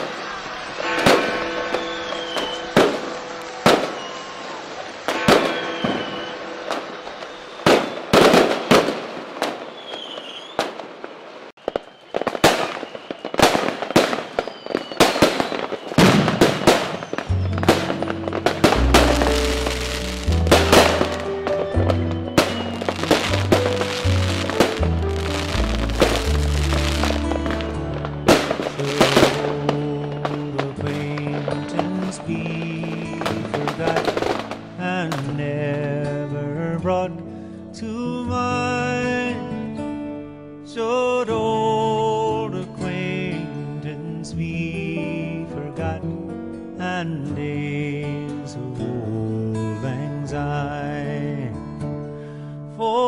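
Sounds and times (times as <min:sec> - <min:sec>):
firework whistles: 0:00.0 - 0:31.6
fireworks bangs and crackles: 0:00.0 - 0:36.2
music with deep bass: 0:17.3 - 0:29.5.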